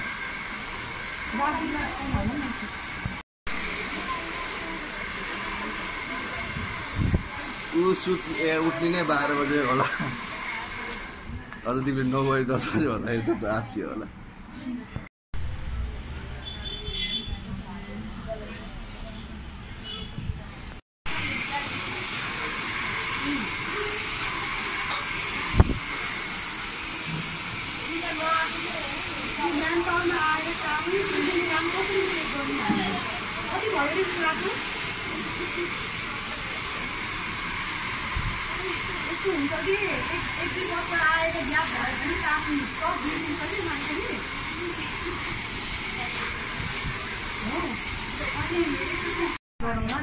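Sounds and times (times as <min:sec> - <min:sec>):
hair dryer running: 0:00.0 - 0:12.0, 0:21.1 - 0:49.4.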